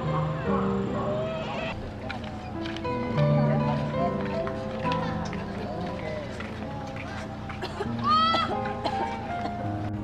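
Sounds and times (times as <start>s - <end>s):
people's voices: 0.0s - 9.7s
background music: 2.5s - 10.0s.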